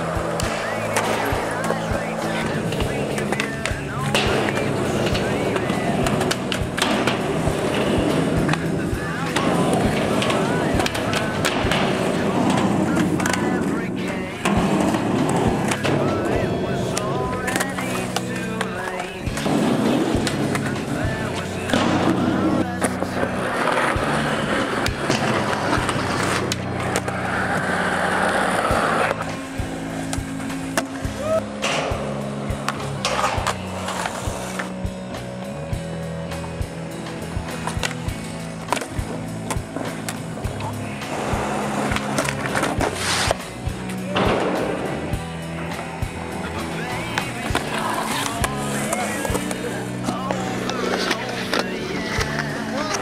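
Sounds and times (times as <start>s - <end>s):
skateboard on concrete: 0.0s - 53.0s
skateboards popping and landing: 0.0s - 53.0s
music with a steady beat: 14.4s - 53.0s.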